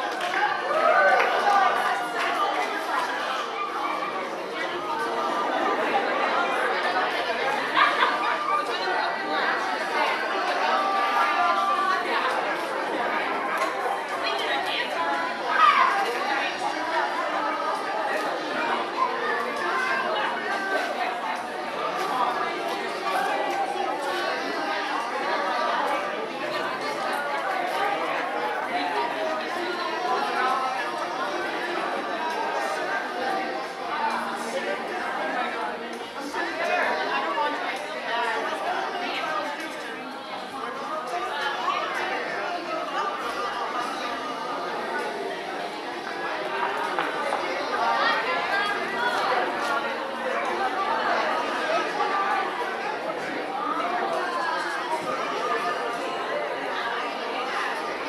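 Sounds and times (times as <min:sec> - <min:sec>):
babble of overlapping voices: 0:00.0 - 0:58.0
crowd chatter: 0:00.0 - 0:58.0.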